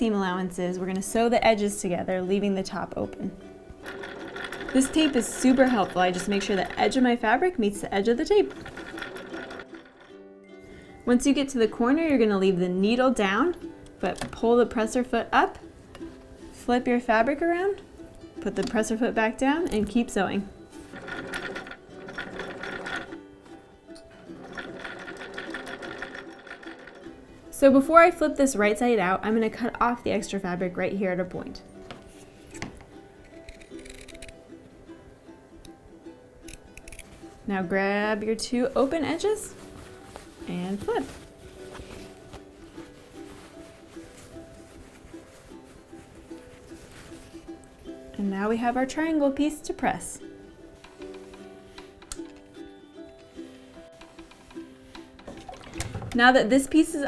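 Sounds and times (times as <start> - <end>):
soft background music: 0.0 - 57.0
sewing machine stitching: 3.8 - 10.2, 20.8 - 23.2, 24.2 - 27.2
scissors snipping fabric: 33.3 - 34.4.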